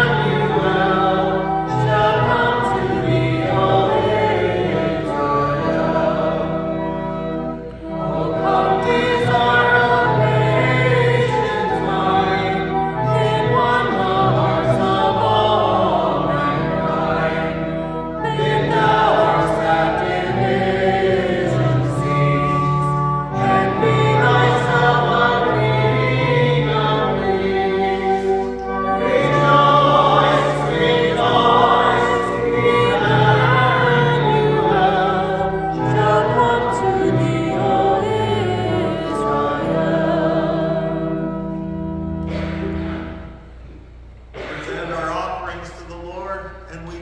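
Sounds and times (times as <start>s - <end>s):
group singing a hymn: 0.0s - 43.8s
low accompaniment: 0.0s - 47.0s.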